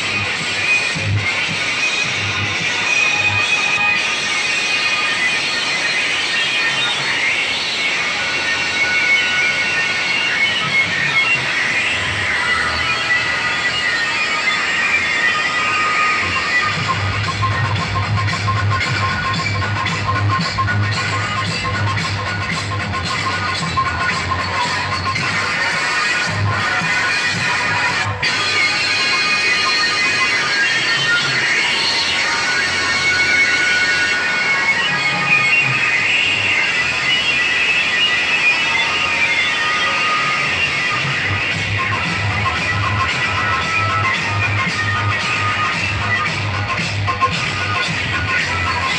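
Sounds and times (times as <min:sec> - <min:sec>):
loud music with heavy bass: 0:00.0 - 0:48.9.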